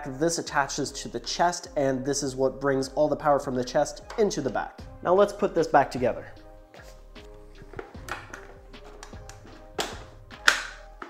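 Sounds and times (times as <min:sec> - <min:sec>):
background music: 0:00.0 - 0:11.0
plastic panels clacking: 0:07.8 - 0:11.0.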